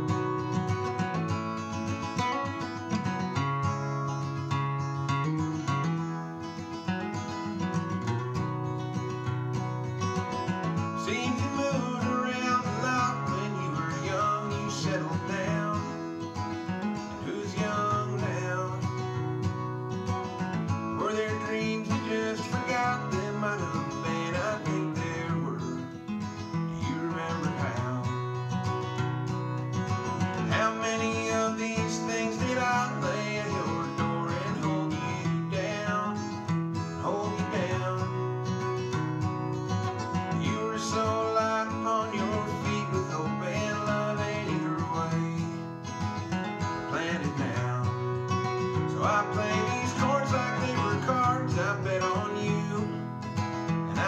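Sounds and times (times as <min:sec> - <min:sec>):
acoustic guitar strumming: 0:00.0 - 0:54.0
man singing: 0:10.7 - 0:28.6, 0:30.2 - 0:38.9, 0:39.8 - 0:54.0.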